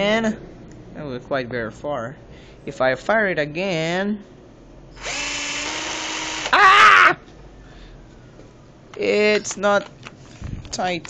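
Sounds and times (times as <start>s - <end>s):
drill spinning motor whine: 5.0s - 6.6s.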